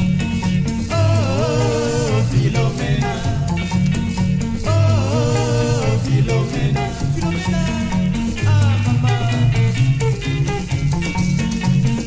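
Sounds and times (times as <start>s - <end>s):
bass guitar line: 0.0s - 12.0s
plucked guitar lines: 0.0s - 12.0s.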